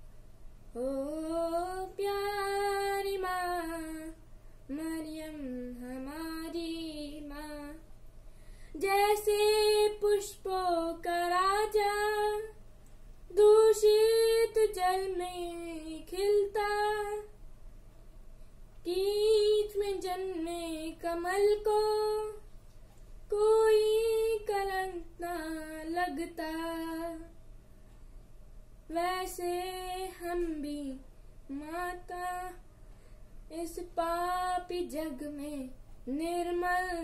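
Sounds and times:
boy singing a hymn solo: 0:00.8 - 0:07.8, 0:08.8 - 0:12.6, 0:13.3 - 0:17.3, 0:18.9 - 0:22.4, 0:23.3 - 0:27.3, 0:28.9 - 0:32.6, 0:33.5 - 0:37.0
boy breathing: 0:08.2 - 0:08.8.

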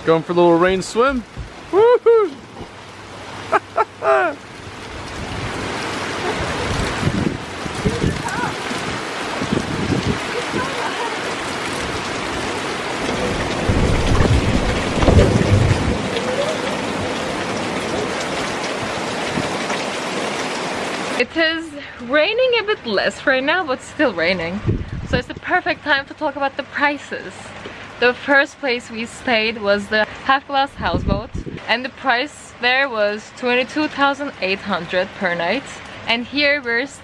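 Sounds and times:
heavy rain on water: 0:00.0 - 0:37.0
low rumbles: 0:02.4 - 0:19.6.

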